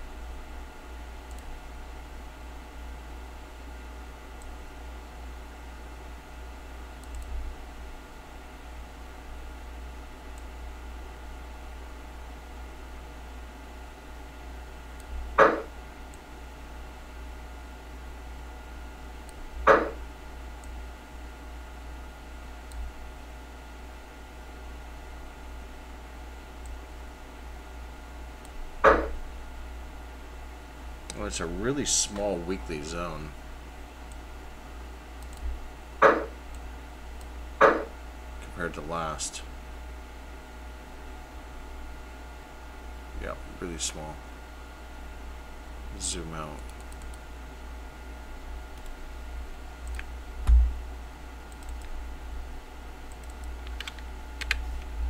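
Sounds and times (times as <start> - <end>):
low room hum: 0.0 - 55.0.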